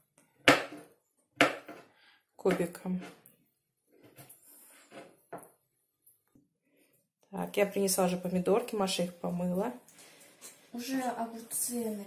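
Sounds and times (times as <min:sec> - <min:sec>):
knife chopping on cutting board: 0:00.4 - 0:01.9.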